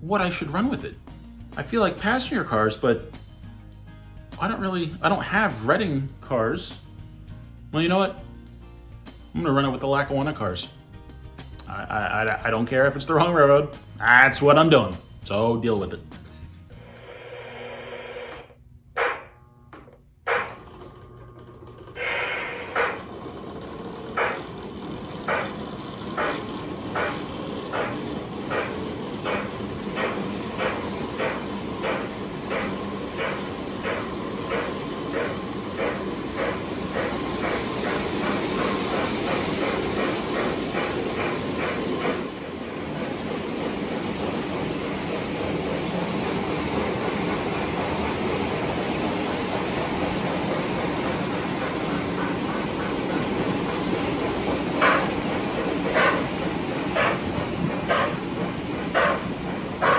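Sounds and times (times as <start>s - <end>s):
model train running: 20.3s - 59.9s
rhythmic track clicking: 23.7s - 59.9s.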